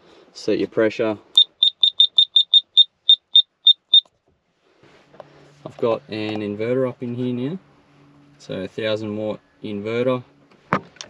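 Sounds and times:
short high electronic beeps: 1.4 - 4.1.

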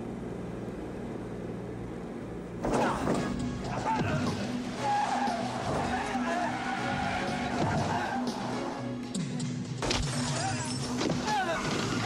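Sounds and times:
tyres squealing: 2.6 - 8.8
dramatic action music: 2.7 - 12.0.

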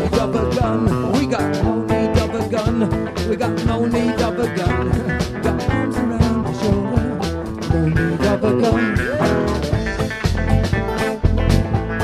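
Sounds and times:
live rock band playing: 0.0 - 12.0
guitar lead sliding up: 4.1 - 12.0.

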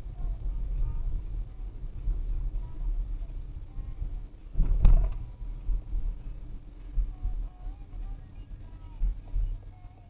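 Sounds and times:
road and engine rumble: 0.0 - 10.0.

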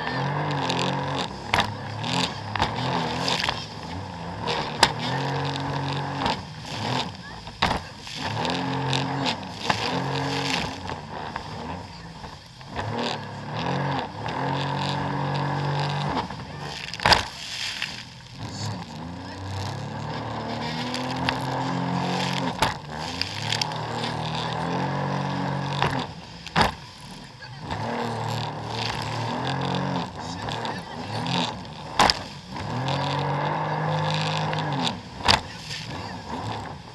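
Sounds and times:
hull slapping water: 0.0 - 36.9
jet ski engine: 0.0 - 36.9
wind and spray noise: 0.0 - 36.9.

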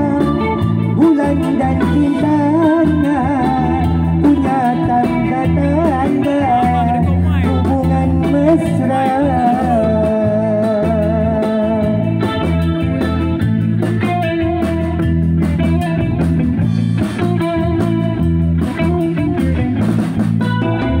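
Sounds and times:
drum kit: 0.0 - 21.0
electric guitar bending notes: 0.0 - 21.0.

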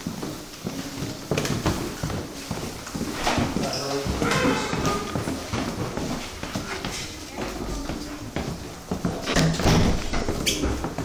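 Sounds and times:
footsteps on wooden stairs: 0.0 - 11.0.

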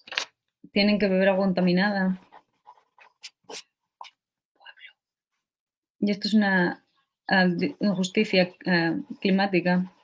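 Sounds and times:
person speaking: 0.7 - 5.0, 6.0 - 10.0.

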